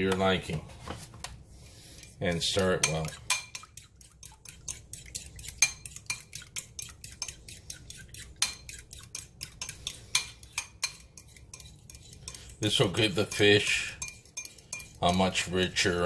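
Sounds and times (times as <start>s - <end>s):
fork clinking against bowl: 2.0s - 15.5s.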